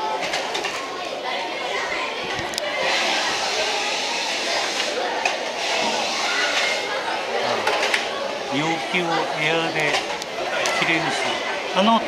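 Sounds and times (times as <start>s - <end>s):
overlapping voices talking: 0.0s - 12.0s.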